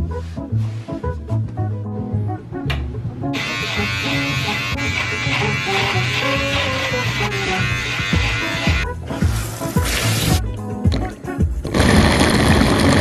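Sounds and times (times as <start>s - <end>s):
background music: 0.0s - 13.0s
small electric motor buzzing: 3.4s - 8.8s.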